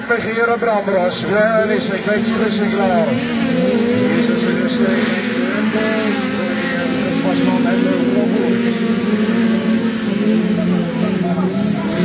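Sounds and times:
racing car engines: 0:00.0 - 0:12.0.

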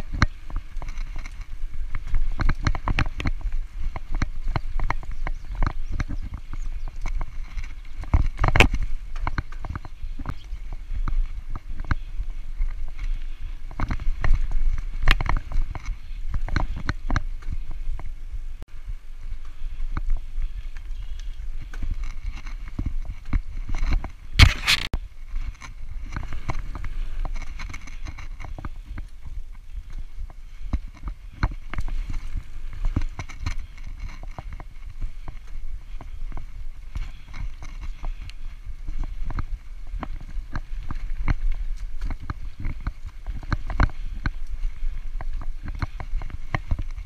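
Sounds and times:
bike rattling knocks and clicks: 0:00.0 - 0:18.2, 0:19.3 - 0:47.0
wind and tyre rumble: 0:00.0 - 0:47.0.

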